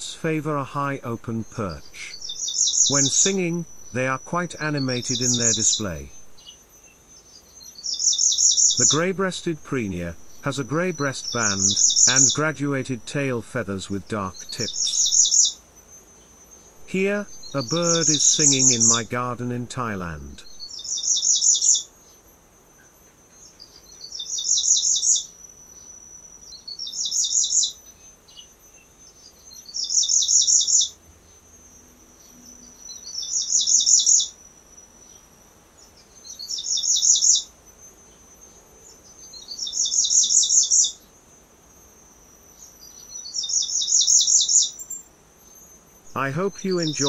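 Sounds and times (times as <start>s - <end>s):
bird singing high-pitched phrases: 0.0s - 6.6s, 7.3s - 15.6s, 16.7s - 21.9s, 42.9s - 45.0s, 46.0s - 47.0s.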